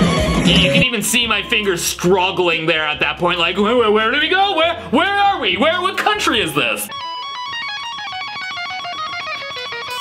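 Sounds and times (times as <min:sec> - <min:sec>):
electric guitar tapping run: 0:06.9 - 0:10.0.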